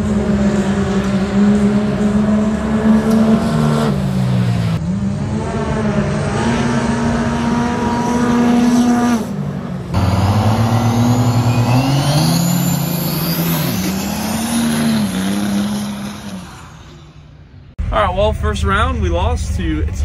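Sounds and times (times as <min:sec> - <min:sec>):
diesel engine at high revs: 0:00.0 - 0:17.8
truck accelerating away: 0:00.0 - 0:18.0
high rising whine: 0:09.9 - 0:20.0.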